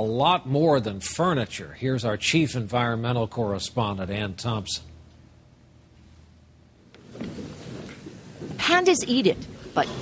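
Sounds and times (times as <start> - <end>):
noisy rumble: 0.0 - 10.0
woman speaking: 8.6 - 10.0.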